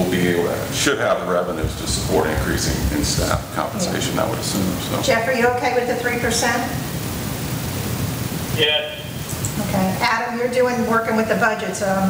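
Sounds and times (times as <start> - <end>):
steady background hiss: 0.0 - 12.0
person speaking: 2.0 - 5.1.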